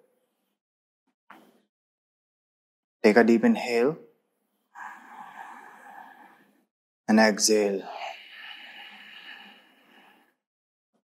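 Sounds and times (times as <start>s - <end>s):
man inhaling deeply: 8.0s - 10.4s.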